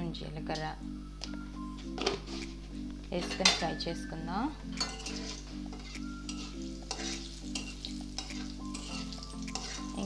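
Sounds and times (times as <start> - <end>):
background music: 0.0 - 10.0
metal utensil clinking on metal: 4.8 - 10.0.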